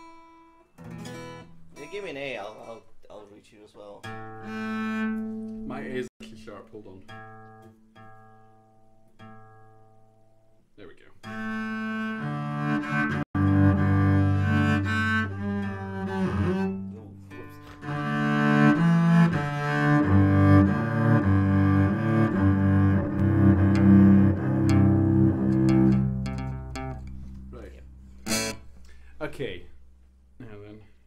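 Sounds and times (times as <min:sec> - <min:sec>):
string instruments tuning up: 0:11.3 - 0:29.1.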